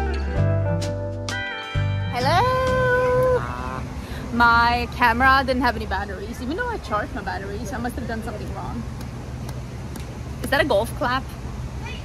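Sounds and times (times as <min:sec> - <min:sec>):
country music: 0:00.0 - 0:03.4
low bass: 0:00.0 - 0:04.6.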